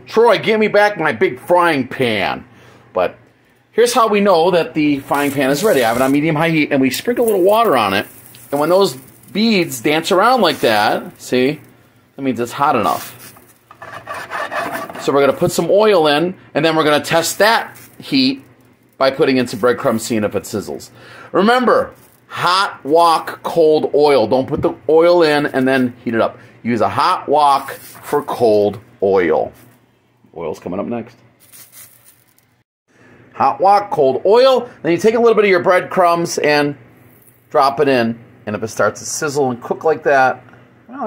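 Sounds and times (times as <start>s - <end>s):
soft handling sounds: 5.0s - 11.8s, 12.6s - 13.8s, 16.9s - 20.2s, 21.8s - 22.3s, 27.6s - 28.5s, 29.4s - 29.9s, 31.4s - 32.6s
water sizzling on hot pan: 5.0s - 12.0s, 12.6s - 13.8s, 16.8s - 20.4s.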